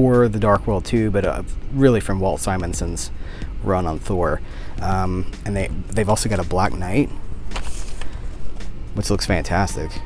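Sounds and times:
steady low rumble: 0.0 - 9.9
packaging rustling: 7.5 - 8.3.

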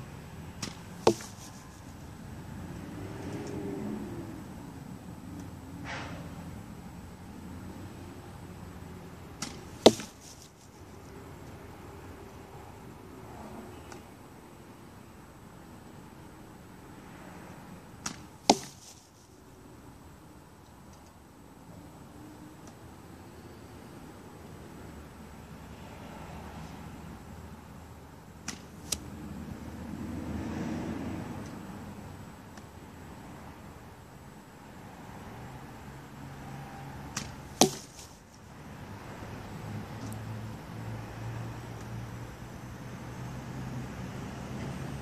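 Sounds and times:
arrow striking brush pile: 0.6 - 2.0, 9.4 - 10.8, 18.0 - 19.3, 37.2 - 38.2.

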